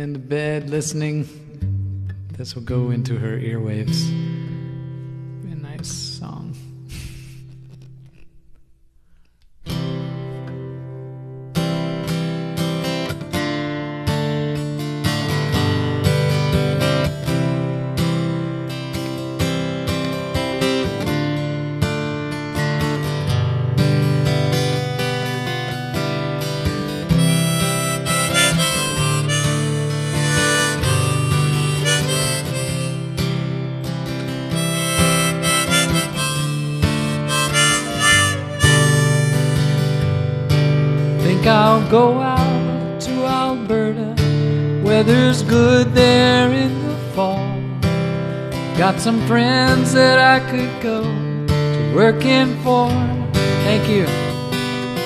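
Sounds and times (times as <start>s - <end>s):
strummed acoustic guitar: 0.0s - 55.0s
harmonica: 27.0s - 33.5s, 34.5s - 40.3s.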